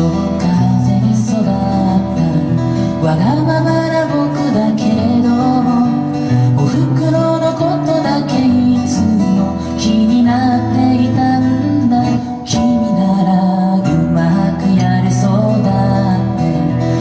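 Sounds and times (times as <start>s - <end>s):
acoustic guitar folk song: 0.0s - 17.0s.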